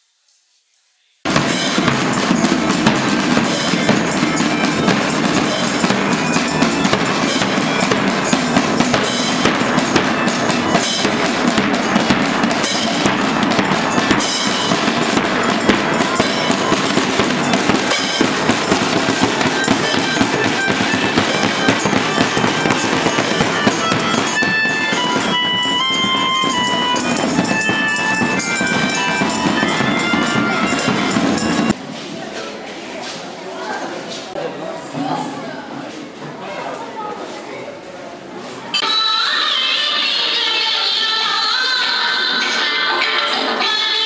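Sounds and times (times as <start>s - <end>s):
snare drums beating: 1.3s - 31.8s
melodica held notes: 3.2s - 31.8s.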